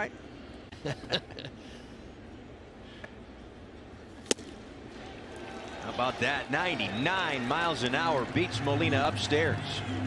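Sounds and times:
baseball smacking into mitt: 4.2s - 4.6s.

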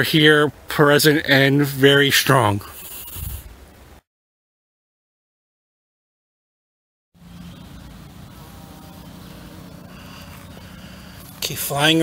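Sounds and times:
faint outdoor background noise: 0.0s - 4.0s, 7.2s - 12.0s
bumblebee buzzing: 7.2s - 11.4s.

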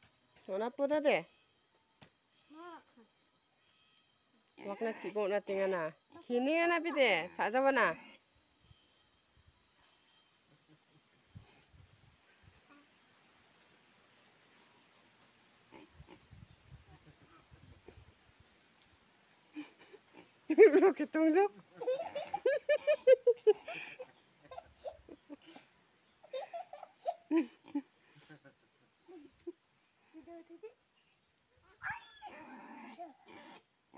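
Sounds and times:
pig grunting: 32.3s - 33.7s.

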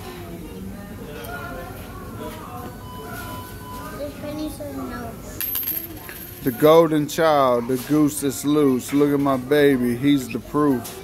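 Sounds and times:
faint background voices: 0.0s - 11.0s
metal object clinking: 5.4s - 6.6s.

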